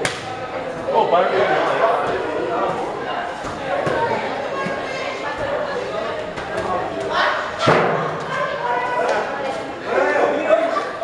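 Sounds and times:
group chattering: 0.0 - 11.0.

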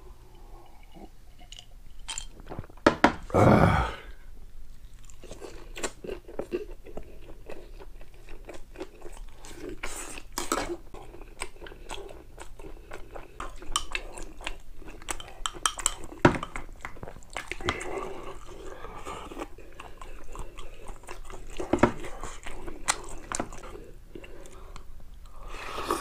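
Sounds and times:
man chewing and eating: 0.0 - 26.0.

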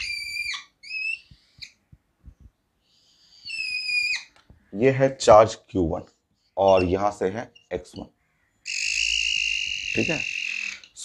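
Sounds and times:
marker squeaking on whiteboard: 0.0 - 5.2, 6.4 - 8.1, 8.7 - 11.0.

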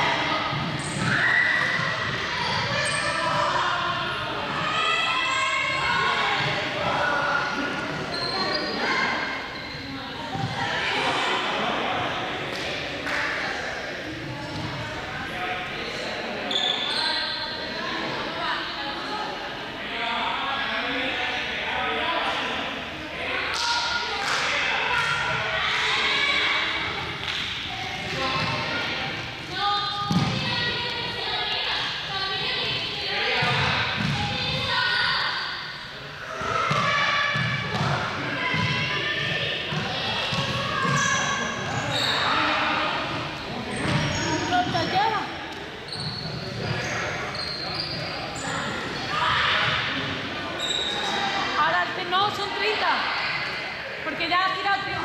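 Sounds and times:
voices chattering in echoing hall: 0.0 - 55.0
balls bouncing on floor: 30.1 - 30.5, 33.4 - 34.7, 36.7 - 38.8.

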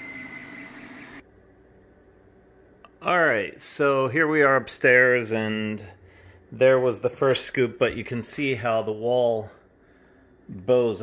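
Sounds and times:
three d printers whining: 0.0 - 1.2.

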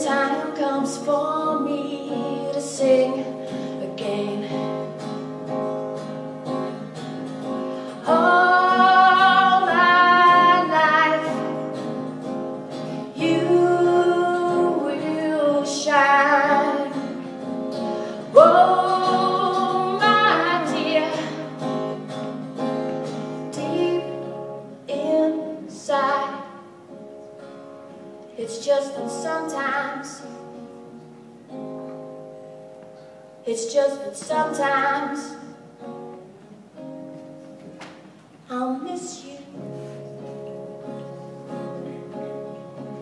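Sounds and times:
woman singing: 0.0 - 5.1, 7.9 - 11.9, 13.0 - 21.8, 23.5 - 26.7, 28.4 - 30.7, 33.4 - 35.7, 38.5 - 39.7
acoustic guitar: 0.0 - 43.0.

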